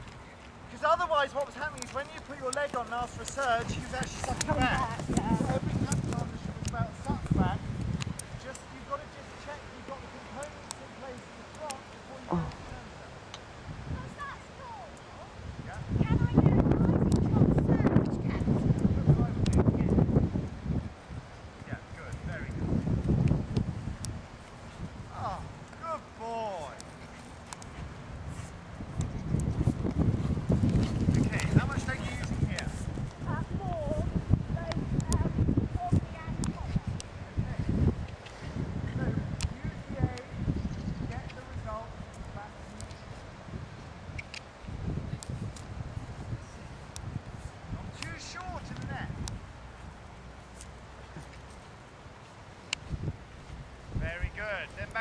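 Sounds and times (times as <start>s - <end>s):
sharp clicks: 44.1s - 44.5s.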